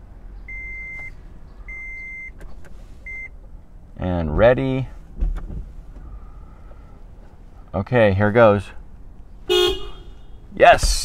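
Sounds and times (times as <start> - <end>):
car warning chime beeping: 0.5 - 2.4, 3.0 - 3.4.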